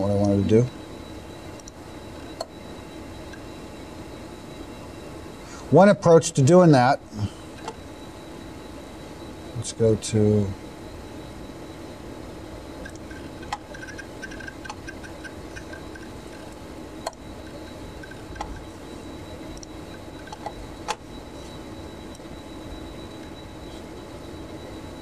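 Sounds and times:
faint high whine: 0.0s - 25.0s
room hum: 0.0s - 25.0s.

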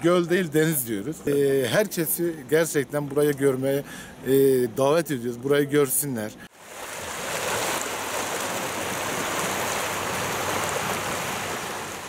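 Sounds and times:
small waves washing over rocks: 6.6s - 12.0s.

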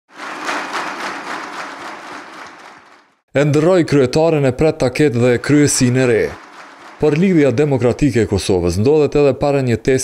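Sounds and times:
crowd clapping: 0.1s - 3.2s, 5.1s - 8.4s.

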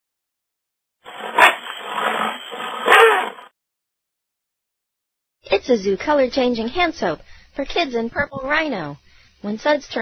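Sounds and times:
rough loud animal call: 1.1s - 3.5s.

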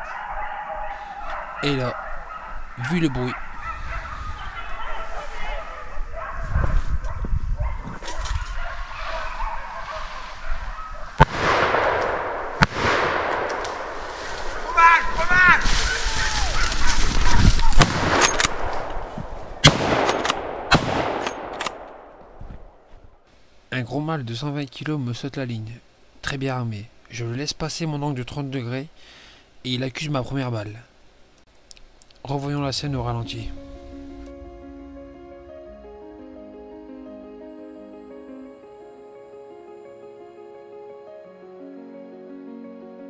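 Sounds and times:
dogs baying: 0.0s - 11.1s
sharp cracks: 11.2s - 22.3s.

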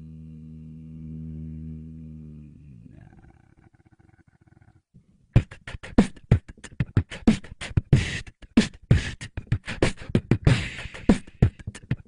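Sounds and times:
beatboxer throat growl: 0.0s - 4.8s, 5.4s - 12.0s.

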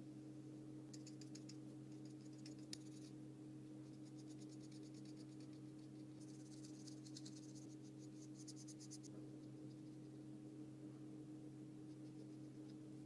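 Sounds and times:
steady low hum: 0.0s - 13.0s
paintbrush strokes on paper: 3.8s - 10.2s.

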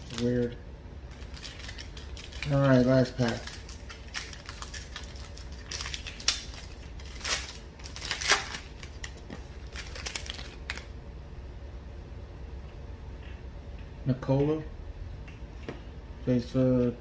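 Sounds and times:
foil wrapper crinkling and tearing: 0.0s - 0.5s, 1.1s - 10.9s.

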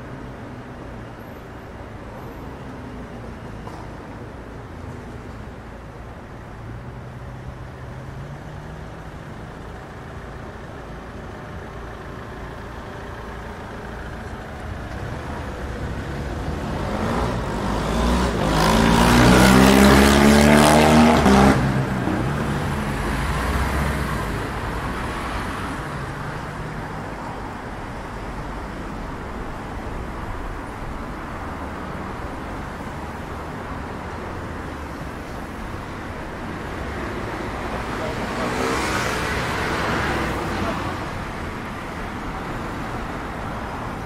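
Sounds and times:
traffic hum: 0.0s - 44.0s
vehicle engine passing by: 15.9s - 24.5s.

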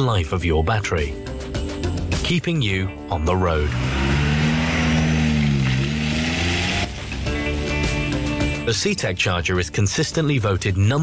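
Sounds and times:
sports car engine driving past: 3.7s - 7.3s.

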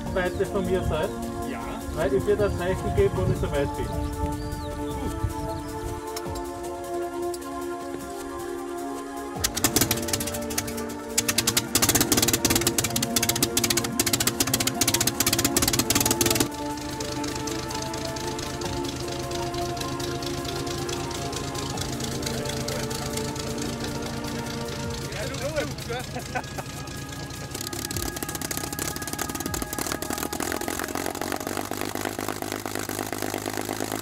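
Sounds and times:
aero engine clattering: 0.0s - 8.4s, 9.0s - 34.0s
background music: 0.0s - 34.0s.

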